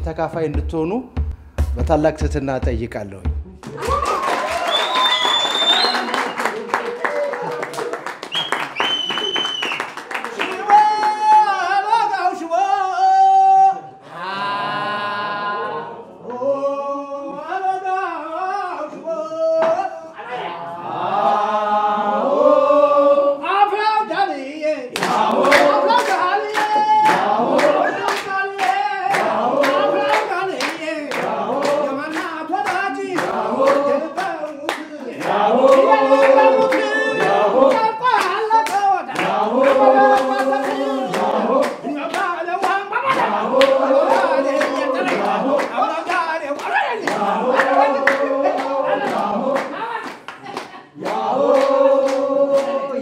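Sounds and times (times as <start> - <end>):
rhythmic hand clapping: 0.6 - 12.1, 24.9 - 53.0
group singing unaccompanied: 14.0 - 50.2, 50.8 - 53.0.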